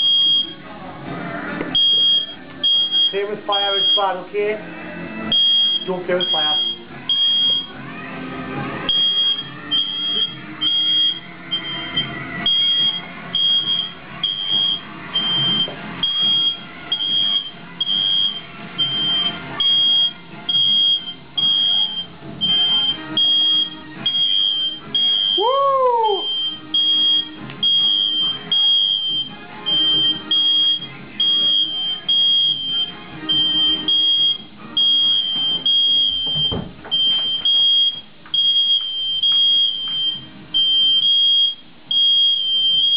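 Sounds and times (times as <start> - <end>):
smoke alarm beeping: 0.0 - 0.6, 1.8 - 4.2, 5.3 - 7.7, 8.9 - 25.5, 26.1 - 42.9.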